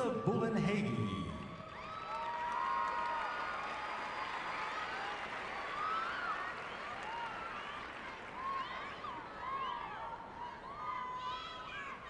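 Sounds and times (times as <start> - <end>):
crowd applauding: 1.6 - 10.0
crowd cheering and whooping: 1.6 - 12.0.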